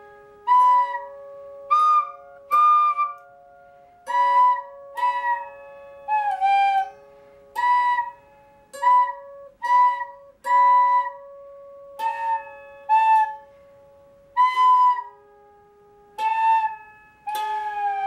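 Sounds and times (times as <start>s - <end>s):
nose flute whistling tune: 0.0s - 13.7s, 14.4s - 15.4s, 16.2s - 18.0s
out of tune lap harp plucking: 0.0s - 18.0s.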